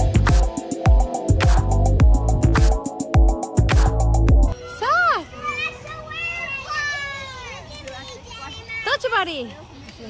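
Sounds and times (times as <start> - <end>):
young children's voices: 4.6 - 9.0.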